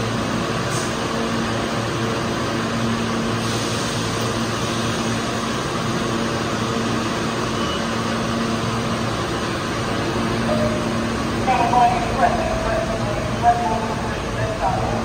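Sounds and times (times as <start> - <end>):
subway train humming at platform: 0.0 - 15.0.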